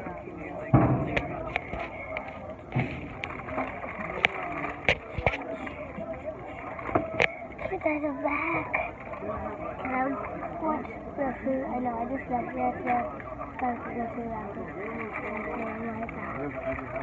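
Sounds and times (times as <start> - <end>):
muffled talk: 0.0 - 17.0.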